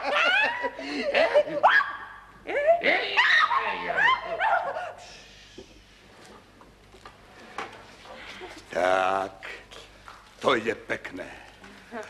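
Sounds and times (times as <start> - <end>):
man and woman laughing: 0.0 - 1.7.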